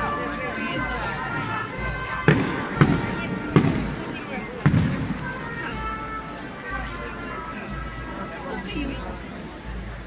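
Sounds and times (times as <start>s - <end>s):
music: 0.0s - 10.0s
voices: 0.0s - 10.0s
firecracker bangs: 1.3s - 5.8s.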